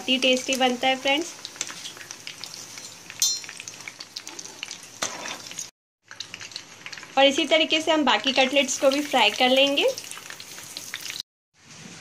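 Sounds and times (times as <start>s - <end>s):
hot oil sizzling in a frying pan: 0.0s - 11.2s
metallic clink: 3.2s - 3.5s.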